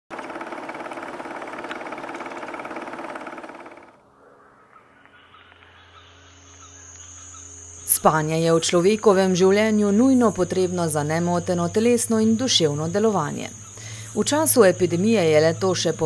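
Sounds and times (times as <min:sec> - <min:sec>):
fast rattle over held tones: 0:00.1 - 0:04.0
quiet sustained music: 0:04.0 - 0:16.0.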